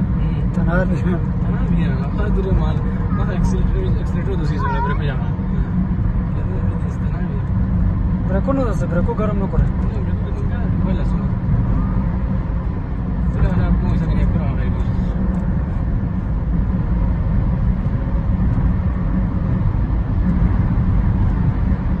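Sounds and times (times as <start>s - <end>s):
car engine and tyre rumble: 0.0s - 22.0s.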